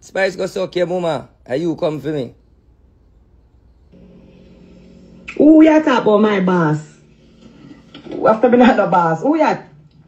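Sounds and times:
faint background noise: 0:00.0 - 0:10.0
low hum from phone speaker: 0:02.3 - 0:10.0.

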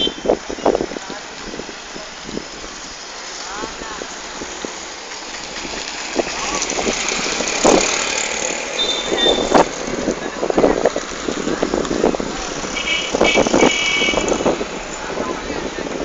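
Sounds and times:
auto-rickshaw driving past: 0:04.0 - 0:15.0.

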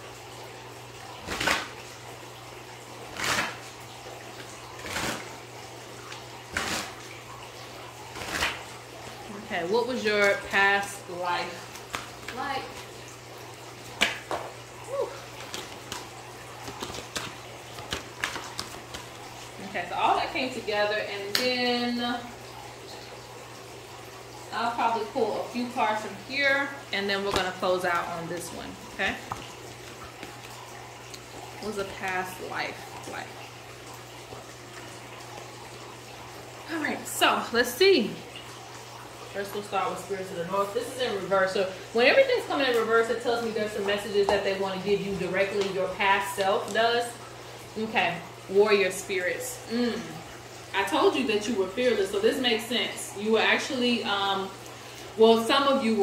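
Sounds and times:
low hum with hiss: 0:00.0 - 0:56.0
woman speaking: 0:09.3 - 0:11.7, 0:12.3 - 0:12.8, 0:19.6 - 0:22.3, 0:24.5 - 0:29.4, 0:31.6 - 0:33.4, 0:36.7 - 0:38.2, 0:39.3 - 0:47.2, 0:47.8 - 0:54.6, 0:55.2 - 0:56.0.

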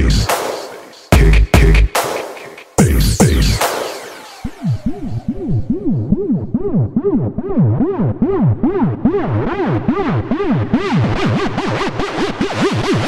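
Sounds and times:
echo: 0:00.0 - 0:04.9
electronic dance music: 0:00.0 - 0:13.0
swooping synth riff: 0:00.0 - 0:13.0.

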